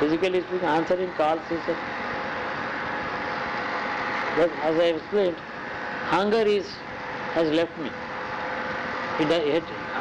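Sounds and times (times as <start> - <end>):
man speaking: 0.0 - 1.8, 4.4 - 5.4, 6.1 - 6.8, 7.4 - 8.0, 9.2 - 10.0
faint constant hum: 0.0 - 10.0.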